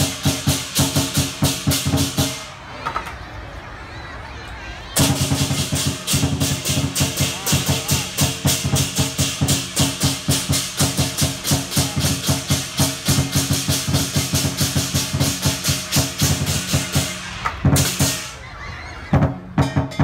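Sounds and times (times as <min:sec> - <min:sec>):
large drum beating: 0:00.0 - 0:02.4, 0:05.0 - 0:18.3, 0:19.1 - 0:20.0
crashing cymbals: 0:00.0 - 0:02.6, 0:05.0 - 0:18.4.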